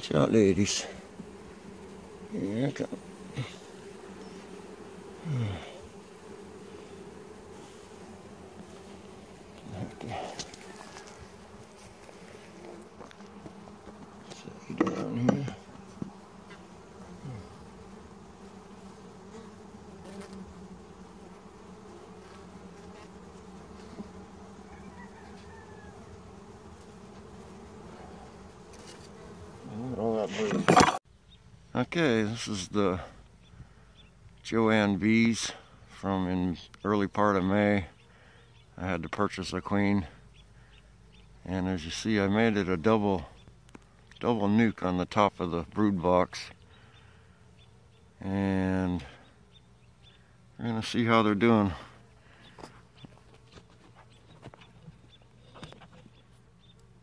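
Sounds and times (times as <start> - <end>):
hive tool scraping wooden frames: 0.0 - 31.0
bees buzzing close by: 0.0 - 31.4, 37.0 - 57.0
bee colony humming: 0.0 - 57.0.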